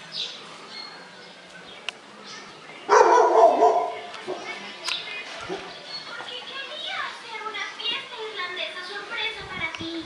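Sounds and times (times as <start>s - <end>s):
dog barking: 2.9s - 4.5s.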